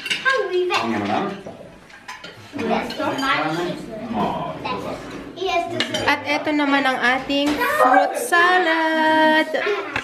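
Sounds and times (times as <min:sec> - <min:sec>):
plates and cutlery clinking: 0:00.0 - 0:07.8, 0:09.6 - 0:10.0.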